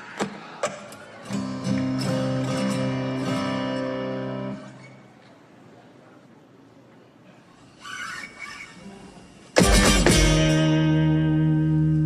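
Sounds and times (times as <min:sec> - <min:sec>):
acoustic guitar chord ringing: 0:09.6 - 0:12.0.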